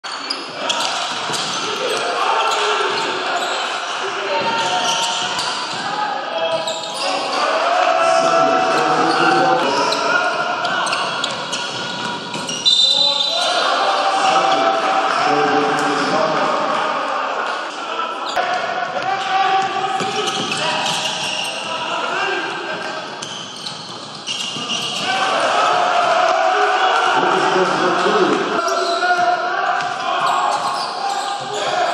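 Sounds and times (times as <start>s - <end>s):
voices calling out echoing: 0.0s - 31.9s
people shouting: 0.6s - 22.8s, 24.7s - 31.9s.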